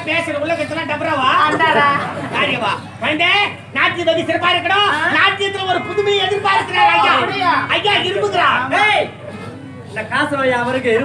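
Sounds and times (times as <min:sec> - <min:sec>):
person shouting: 0:05.7 - 0:07.8.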